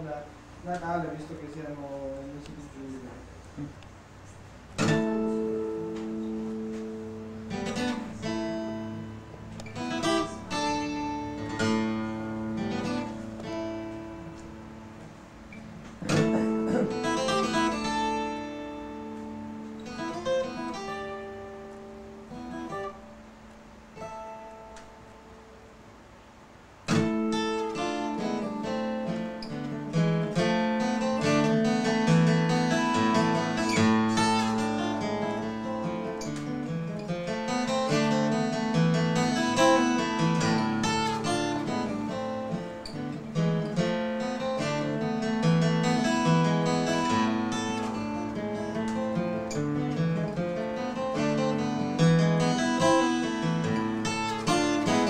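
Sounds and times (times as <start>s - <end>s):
acoustic guitar playing: 0.0s - 55.0s.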